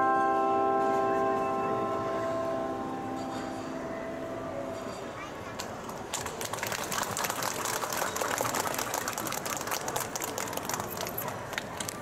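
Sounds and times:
audience applauding: 5.9s - 12.0s.

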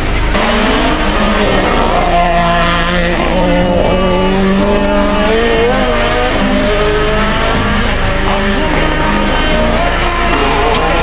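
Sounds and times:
background music: 0.0s - 11.0s
rally car engine revving: 0.0s - 11.0s.

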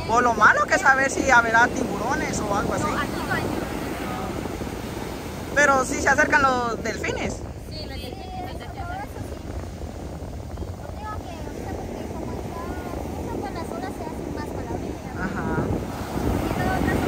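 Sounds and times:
ocean surf breaking: 0.0s - 17.0s
wind buffeting microphone: 0.0s - 17.0s.

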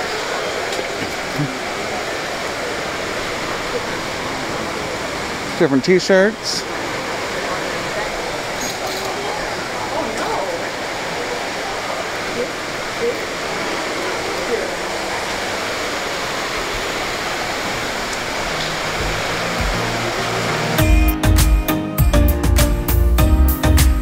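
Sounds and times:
faint distant voices: 0.0s - 19.8s
background music: 18.5s - 24.0s.

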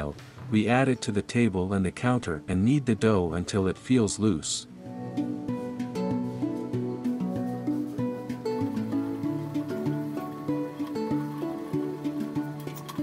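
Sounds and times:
instrumental music with plucked guitar: 4.7s - 13.0s.

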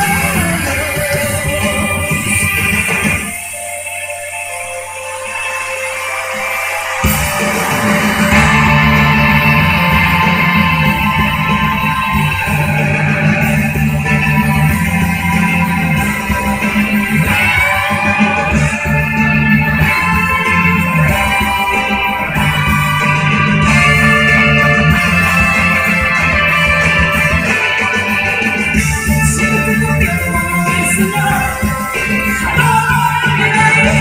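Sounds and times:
rock band playing live: 0.0s - 34.0s
electric guitar: 4.9s - 34.0s.

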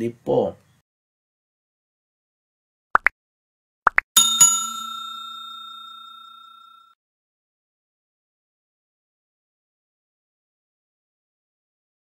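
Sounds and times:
bell strikes: 4.2s - 7.0s.

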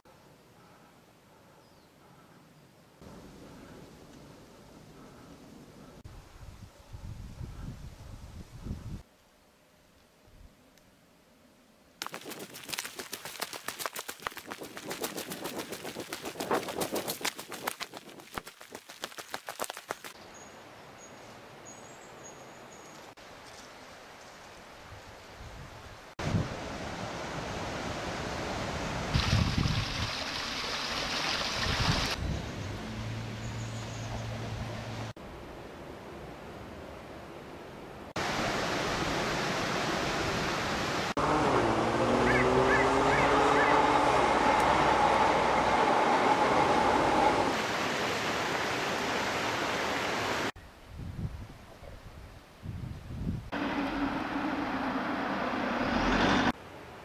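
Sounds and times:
wind gusting on microphone: 6.0s - 9.0s, 27.6s - 30.4s, 31.4s - 32.8s, 50.8s - 53.6s
stream rushing: 12.0s - 20.2s, 26.2s - 32.2s, 38.1s - 50.6s, 53.5s - 57.0s
train whine: 44.0s - 47.5s, 53.6s - 56.5s.

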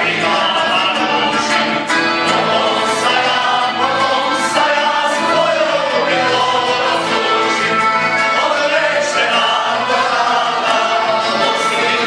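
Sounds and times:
folk band playing: 0.0s - 12.0s
small choir singing: 0.0s - 12.0s.

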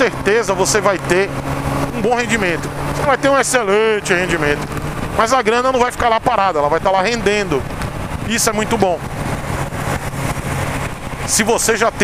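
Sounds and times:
motorcycle engine cruising: 0.0s - 12.0s
wind noise on microphone: 4.3s - 5.2s, 6.2s - 12.0s.

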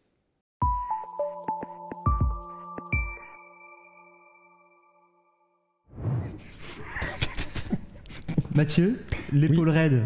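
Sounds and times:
electronic jingle with chime tones: 0.6s - 5.7s.

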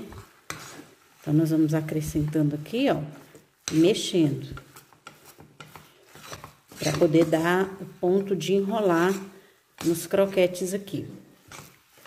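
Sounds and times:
spatula scraping steel pan: 0.0s - 12.0s.

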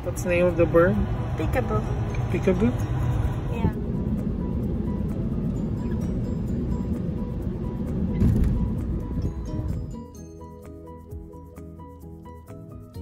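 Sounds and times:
road and engine rumble in car: 0.0s - 10.1s.

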